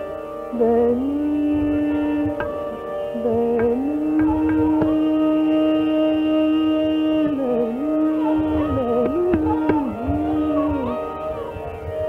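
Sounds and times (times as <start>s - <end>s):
gliding melodic note: 0.0s - 12.0s
higher accompanying melody: 0.0s - 12.0s
steady drone: 0.0s - 12.0s.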